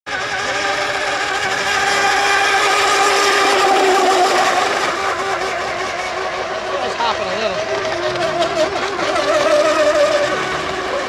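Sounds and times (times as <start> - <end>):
electric boat motors whining: 0.1 - 11.0.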